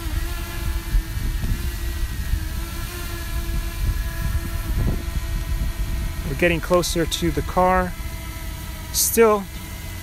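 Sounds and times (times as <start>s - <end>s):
wind rumble on microphone: 0.0s - 9.0s
drone propellers humming: 0.0s - 10.0s.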